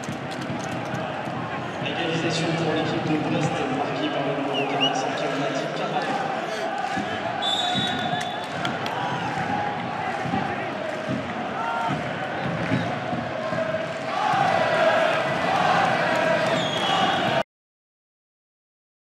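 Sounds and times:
stadium crowd singing and chanting: 0:00.0 - 0:17.4.

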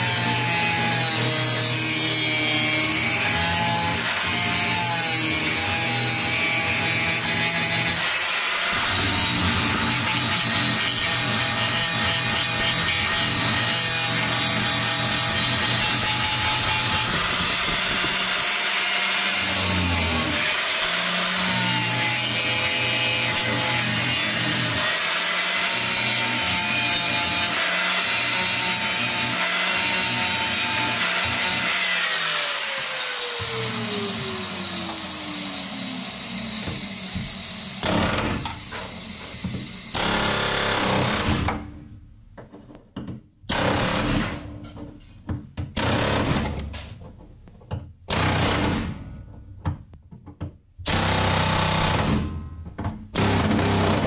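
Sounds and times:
angle grinder grinding metal: 0:00.0 - 0:40.8.

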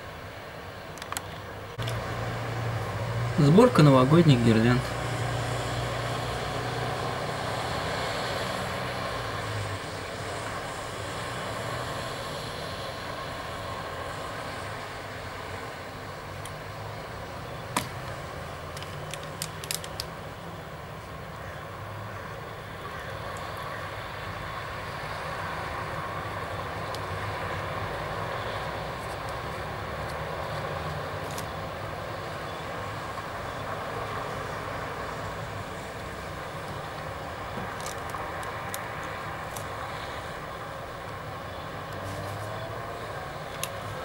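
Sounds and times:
cars passing: 0:00.0 - 0:44.0.

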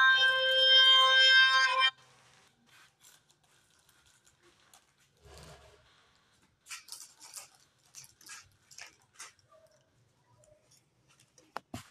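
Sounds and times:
faint scuffs and rustles: 0:02.0 - 0:06.6.

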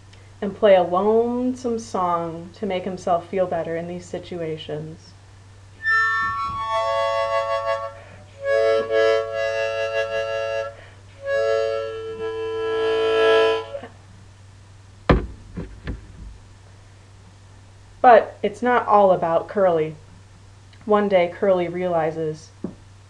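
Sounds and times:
harmonica playing slow tune: 0:05.8 - 0:14.0
brief knocks: 0:15.1 - 0:16.4.

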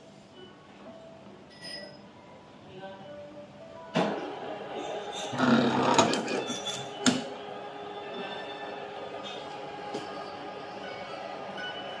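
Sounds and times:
taping machine whirring: 0:05.2 - 0:07.2.

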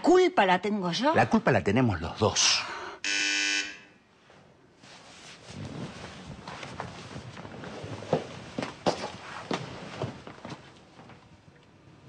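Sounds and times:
electric doorbell buzzer: 0:03.0 - 0:03.9.

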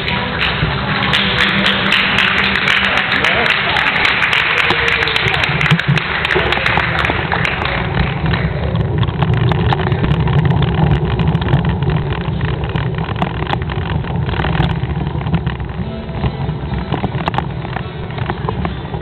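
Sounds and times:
crowd noise: 0:00.0 - 0:19.0
low rumble over cobblestones: 0:00.0 - 0:19.0
clicks and rattles: 0:08.7 - 0:19.0.

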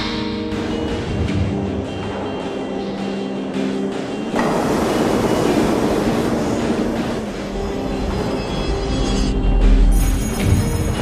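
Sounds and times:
background music: 0:00.0 - 0:11.0
subway train rumbling: 0:00.0 - 0:11.0.

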